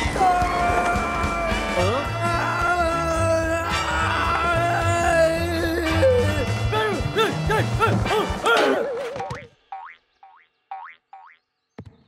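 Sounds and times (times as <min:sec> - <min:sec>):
bouncy cartoon music: 0:00.0 - 0:11.4
boing-like notes: 0:08.6 - 0:11.4.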